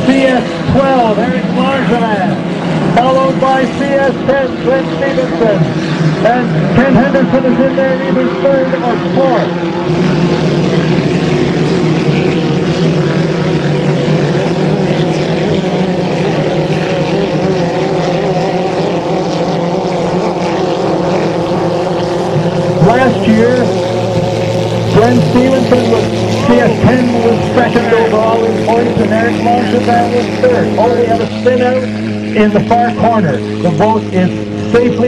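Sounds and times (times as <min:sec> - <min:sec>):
racing boat engines droning: 0:00.0 - 0:35.0.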